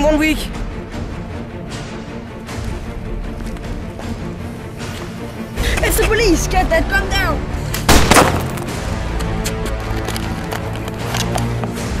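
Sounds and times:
background music with steady beat: 0:00.0 - 0:12.0
gunshot with ringing tail: 0:07.9 - 0:08.7.

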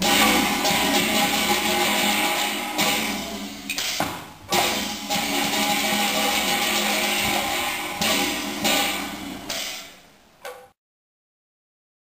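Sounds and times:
percussion: 0:00.0 - 0:09.9
opera ensemble music: 0:04.6 - 0:09.5.

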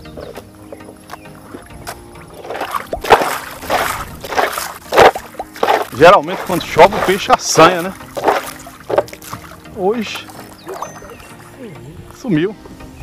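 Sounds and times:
water splashing beside canoe: 0:00.0 - 0:11.6
faint background music: 0:00.0 - 0:13.0.

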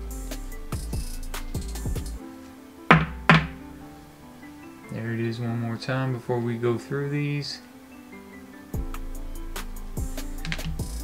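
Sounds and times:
background music: 0:00.0 - 0:11.0
plastic card case knocks: 0:02.9 - 0:03.6.

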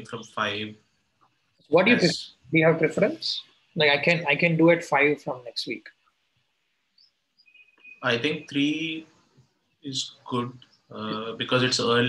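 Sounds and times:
faint high chirps: 0:07.0 - 0:09.0, 0:09.9 - 0:12.0.

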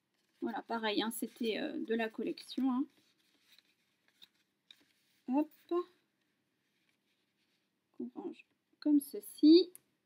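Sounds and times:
paper and card handled: 0:00.0 - 0:07.8.

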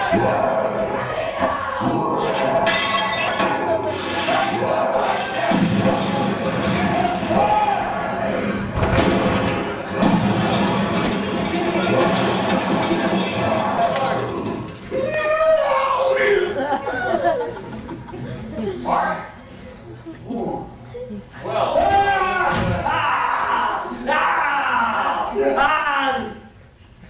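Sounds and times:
music: 0:00.0 - 0:14.9
raised voices: 0:00.0 - 0:26.6
crashing and breaking noises: 0:08.7 - 0:14.8.

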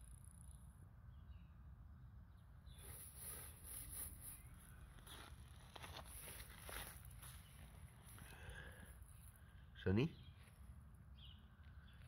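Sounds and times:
hands scraping gravel: 0:02.8 - 0:07.5.

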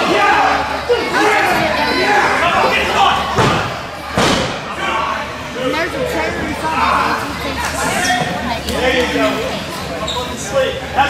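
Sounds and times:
voices: 0:00.0 - 0:11.0.

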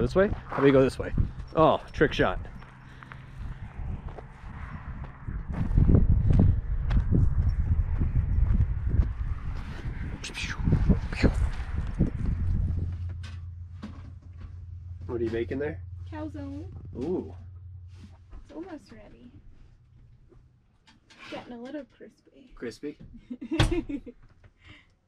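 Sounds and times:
wind buffeting microphone: 0:00.0 - 0:14.1
steady low hum: 0:00.0 - 0:20.9.

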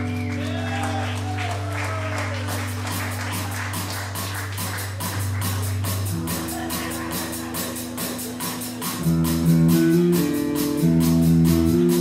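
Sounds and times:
bass and guitar low notes: 0:00.0 - 0:12.0
live rock band playing: 0:00.0 - 0:12.0.

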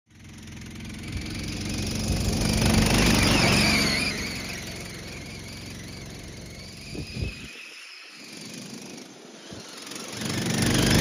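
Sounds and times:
riding lawn mower engine passing: 0:00.1 - 0:11.0.

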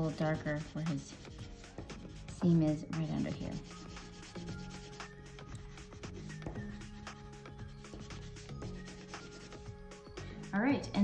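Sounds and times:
colored pencil scratching on paper: 0:00.0 - 0:09.7
soft background music: 0:00.0 - 0:11.0.

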